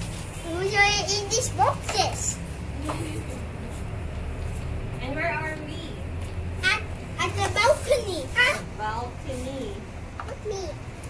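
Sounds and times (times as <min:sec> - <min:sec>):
young children's voices: 0:00.4 - 0:03.6, 0:06.6 - 0:10.8.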